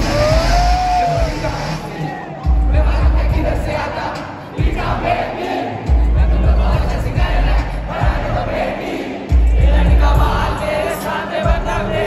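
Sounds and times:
crowd shouting along: 0.0 - 11.3
live rap track with heavy bass: 0.0 - 12.0.

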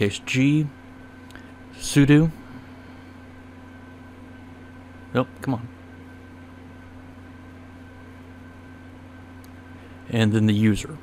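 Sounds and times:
background hum and hiss: 0.0 - 11.0.

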